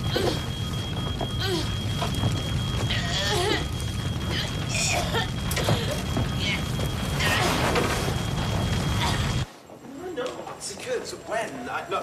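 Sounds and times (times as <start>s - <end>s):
high-pitched alarm tone: 0.0s - 9.5s
fire rumbling: 0.0s - 11.3s.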